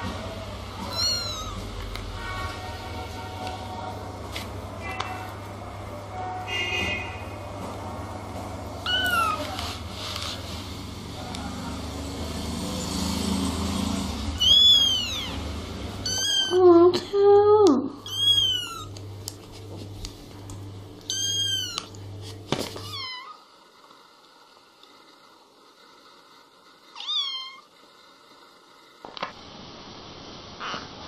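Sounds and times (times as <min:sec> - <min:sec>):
kittens meowing: 0:00.8 - 0:01.6, 0:08.9 - 0:09.4, 0:14.4 - 0:15.4, 0:16.0 - 0:16.7, 0:18.0 - 0:19.0, 0:21.1 - 0:22.0.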